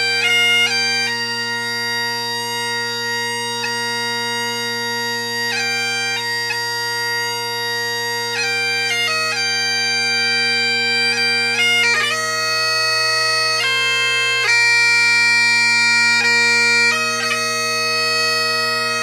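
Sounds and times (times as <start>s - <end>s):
bagpipes playing slow melody: 0.0s - 19.0s.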